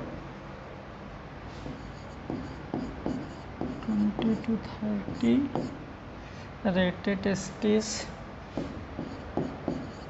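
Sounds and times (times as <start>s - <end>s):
chalk scratching on board: 1.6s - 5.8s, 8.5s - 10.0s.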